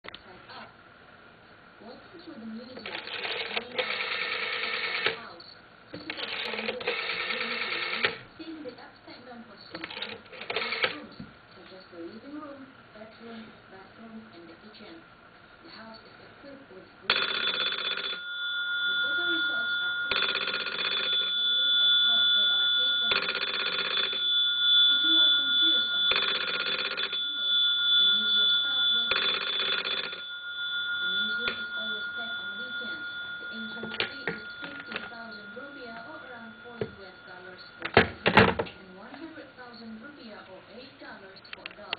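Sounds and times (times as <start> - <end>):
telephone bell ringing: 2.8 - 5.3, 6.1 - 8.2, 9.9 - 11.0, 17.1 - 38.7
thin high tone: 17.2 - 38.8.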